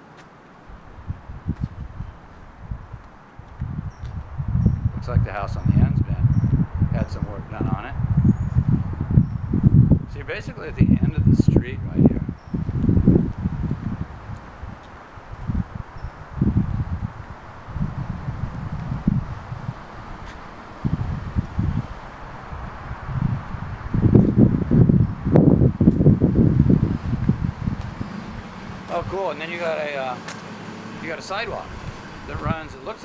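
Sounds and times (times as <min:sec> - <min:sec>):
steady outdoor hiss: 0:00.0 - 0:33.0
wind buffeting microphone: 0:00.6 - 0:33.0.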